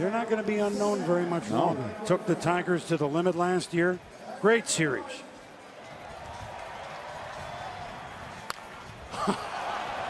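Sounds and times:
stadium crowd noise: 0:00.0 - 0:10.0
wooden bat hitting baseball: 0:08.4 - 0:08.7.

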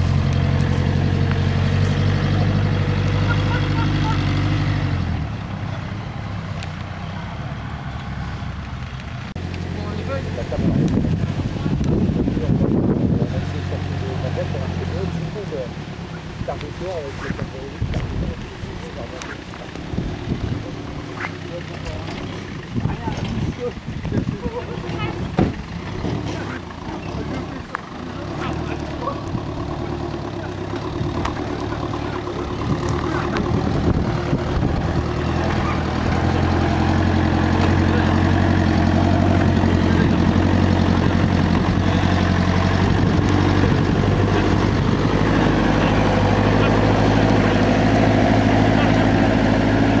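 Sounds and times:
vehicle engine running: 0:00.0 - 0:50.0.

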